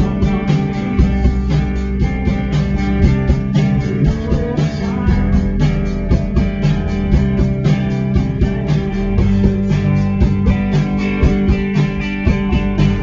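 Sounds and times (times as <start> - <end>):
rock band playing live: 0.0 - 13.0.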